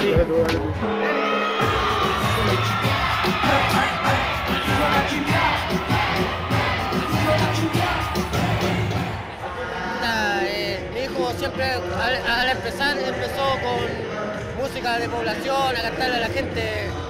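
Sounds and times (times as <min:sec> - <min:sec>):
crowd cheering and singing along: 0:00.0 - 0:17.0
reggaeton music with bass beat: 0:00.0 - 0:17.0.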